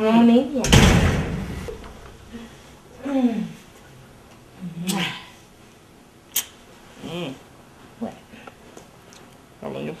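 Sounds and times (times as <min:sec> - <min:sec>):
door shutting with heavy thud: 0:00.6 - 0:02.2.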